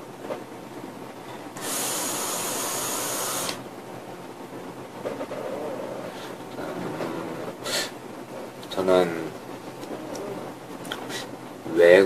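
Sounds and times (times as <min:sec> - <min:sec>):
vaporiser coil hissing: 0:01.5 - 0:03.6.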